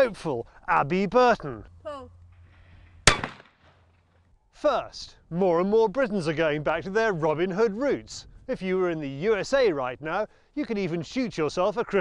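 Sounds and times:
shotgun shot: 3.0s - 3.9s.

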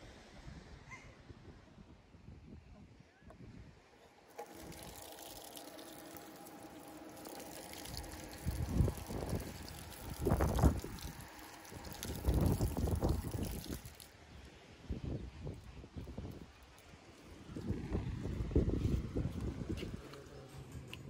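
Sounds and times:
shower water splashing on stone: 4.3s - 14.2s.

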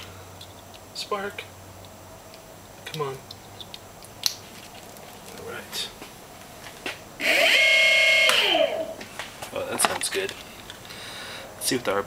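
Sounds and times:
electric motor whine: 7.2s - 9.0s.

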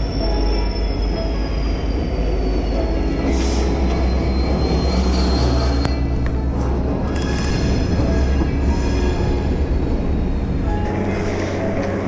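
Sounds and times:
diesel locomotive rumbling: 0.0s - 12.0s.

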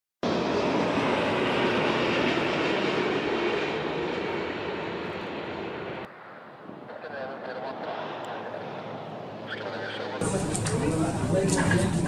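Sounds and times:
jet airliner flying low: 0.2s - 12.0s.

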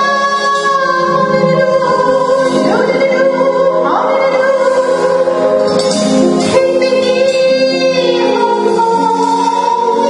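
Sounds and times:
person singing long notes: 0.0s - 5.7s
live band playing a song: 0.0s - 10.0s.

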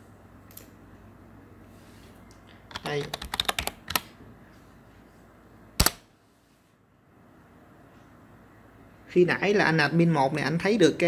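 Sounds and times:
keyboard typing: 2.7s - 4.1s.

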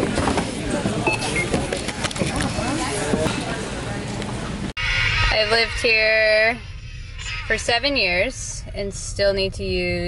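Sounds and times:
background chatter: 0.0s - 4.8s
short high checkout beeps: 1.0s - 1.6s.

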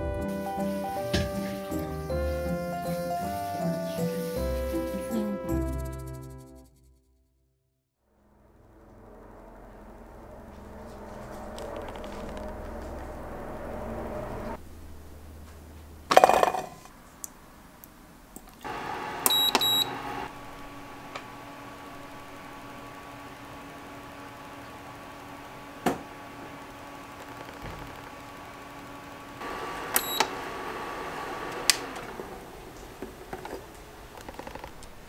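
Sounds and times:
electrical hum: 8.2s - 16.1s, 18.6s - 35.0s
appliance electronic beeps: 18.7s - 20.3s, 29.4s - 32.0s.

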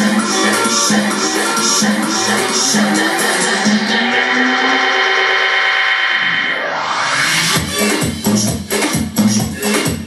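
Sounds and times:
thin midrange house music: 0.0s - 10.0s.

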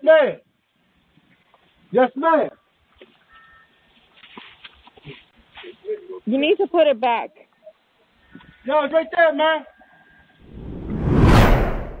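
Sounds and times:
logo whoosh: 10.4s - 12.0s
deep rumble: 10.5s - 12.0s.

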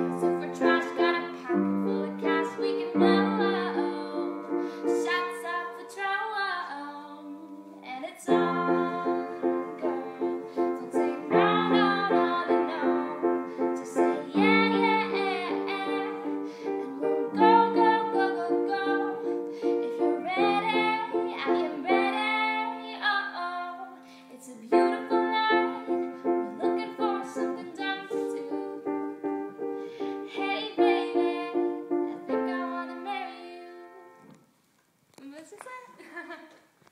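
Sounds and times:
woman singing: 0.0s - 34.2s
piano chords: 0.0s - 34.3s.

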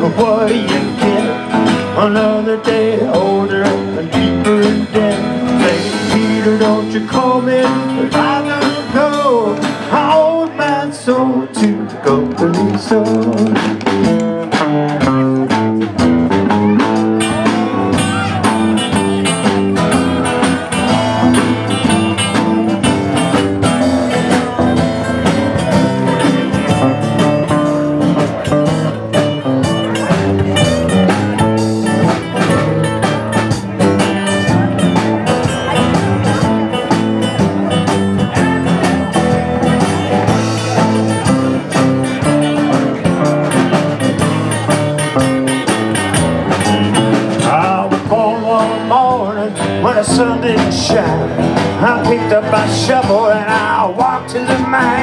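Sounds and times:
drums: 0.0s - 55.0s
pedal steel guitar: 0.0s - 55.0s
strummed acoustic guitar: 0.0s - 55.0s.

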